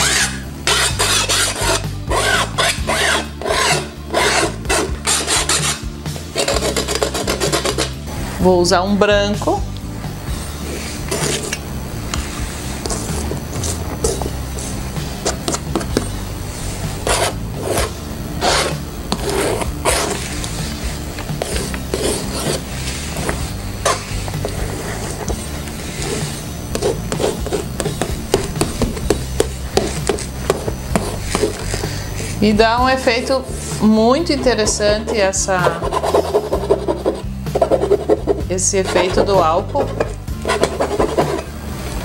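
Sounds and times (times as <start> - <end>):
palette knife scraping canvas: 0.0 - 5.8, 6.4 - 8.0, 10.6 - 11.6, 16.6 - 32.4, 33.2 - 41.4
palette knife tapping and scraping: 6.4 - 8.0, 34.4 - 41.4.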